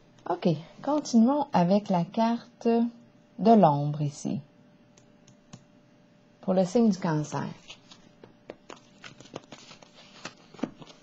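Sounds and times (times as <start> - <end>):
cards rustling and sliding: 7.6 - 11.0.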